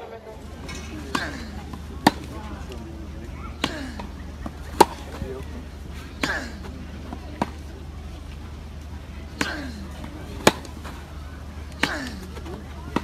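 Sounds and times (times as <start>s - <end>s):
tennis racket hitting ball: 0.7s - 2.8s, 3.5s - 5.5s, 6.2s - 7.7s, 9.3s - 13.0s.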